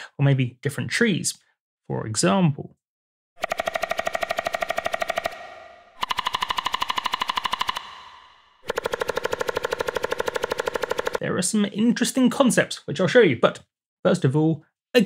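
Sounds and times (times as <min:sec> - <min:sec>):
synthesized woodpecker pecking: 0:03.4 - 0:11.2.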